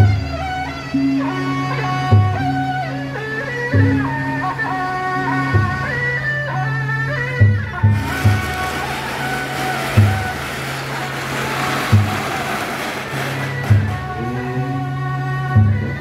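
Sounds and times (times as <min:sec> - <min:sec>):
hissing wash of noise: 0:07.9 - 0:14.1.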